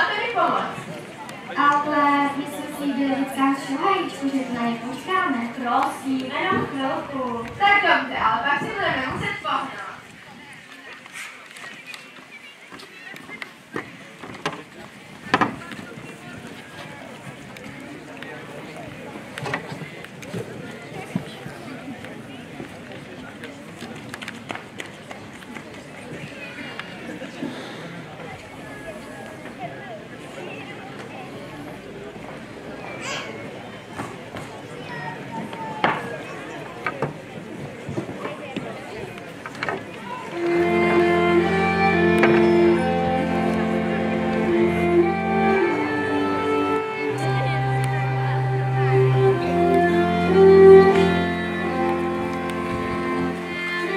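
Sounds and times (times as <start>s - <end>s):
people talking: 0.0s - 53.9s
violins bowing held notes: 40.2s - 53.9s
double bass: 40.4s - 53.9s.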